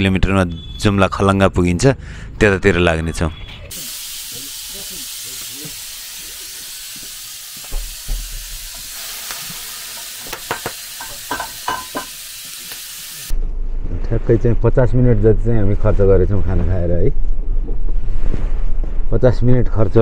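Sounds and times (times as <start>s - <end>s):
fire crackles: 3.7s - 13.4s
wood fire hissing: 3.7s - 13.4s.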